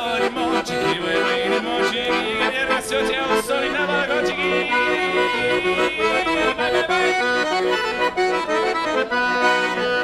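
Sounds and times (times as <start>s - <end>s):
person singing: 0.0s - 7.6s
accordion playing klezmer tune: 0.0s - 10.0s.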